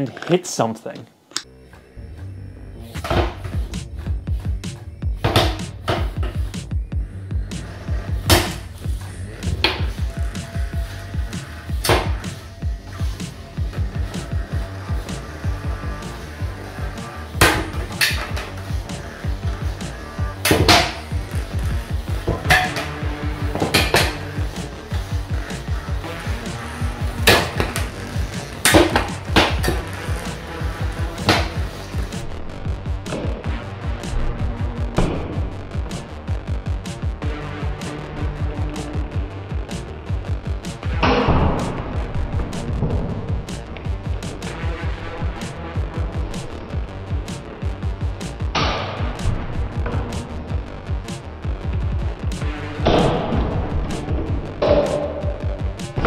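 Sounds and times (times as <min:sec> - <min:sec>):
background music with low beat: 0:01.4 - 0:56.0.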